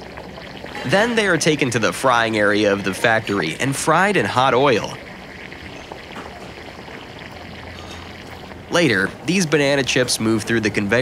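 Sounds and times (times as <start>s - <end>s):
food frying in bubbling oil: 0.0s - 11.0s.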